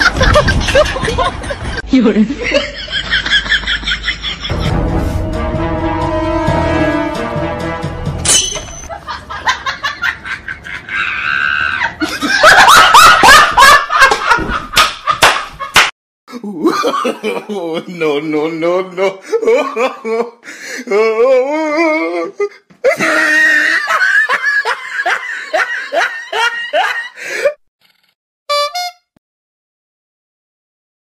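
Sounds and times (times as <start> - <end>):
person laughing: 0.0 - 4.8, 8.9 - 18.1, 18.9 - 27.6
held high tone: 28.5 - 29.1.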